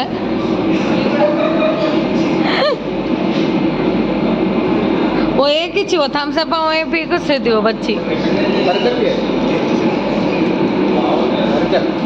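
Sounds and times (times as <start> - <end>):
restaurant noise rumble: 0.0 - 12.0.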